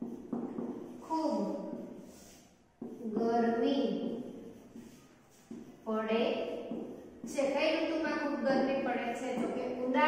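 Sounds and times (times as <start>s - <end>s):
woman speaking: 1.0s - 2.0s, 5.8s - 10.0s.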